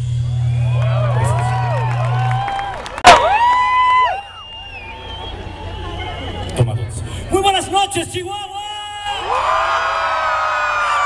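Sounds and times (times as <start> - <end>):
concert audience cheering and screaming: 0.1 - 6.7, 8.8 - 11.0.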